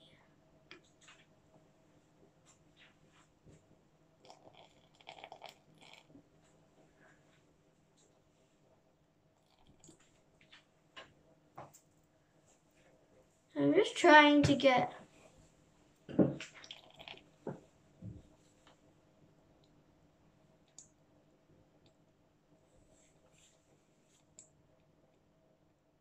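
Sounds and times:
water trickling into plastic dome: 4.2 - 6.5, 9.4 - 10.4, 16.0 - 17.7.

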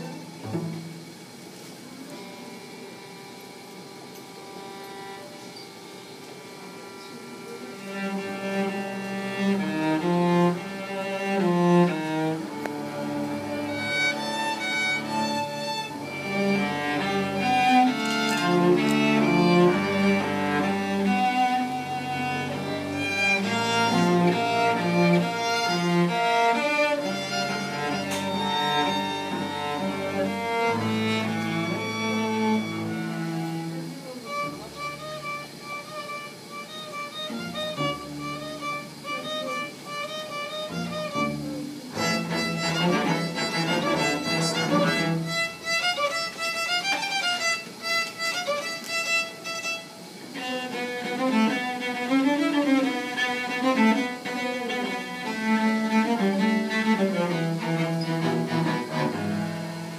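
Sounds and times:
string trio playing: 0.0 - 59.9.

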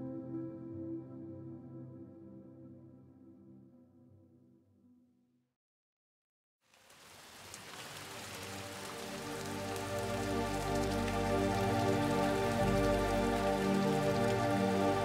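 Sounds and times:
ambient pad chords: 0.0 - 5.0, 9.2 - 15.0
rain pattering: 6.6 - 15.0.

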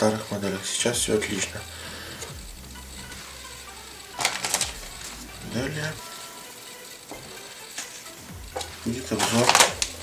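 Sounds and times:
steady low hiss: 0.8 - 9.2.

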